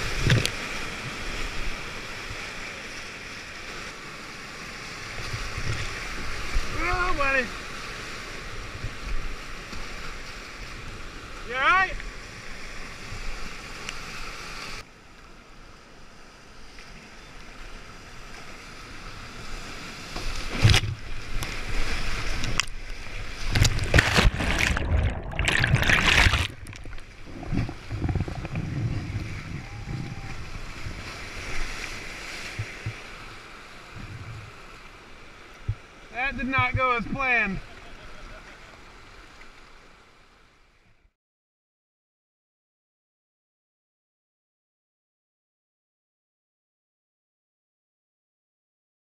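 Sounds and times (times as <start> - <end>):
whitewater rushing and splashing: 0.0 - 14.8, 19.2 - 40.0
muffled underwater sound: 27.2 - 30.7.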